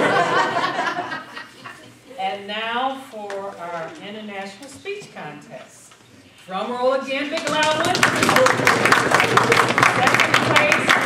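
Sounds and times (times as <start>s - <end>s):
audience applause: 8.0s - 11.0s.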